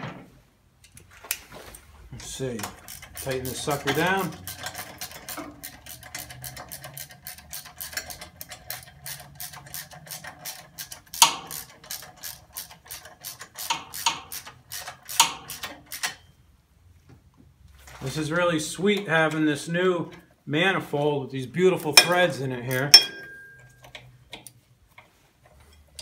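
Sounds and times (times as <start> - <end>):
socket ratchet clicking: 2.6 - 16.2
sharp metal knocks: 22.9 - 23.8.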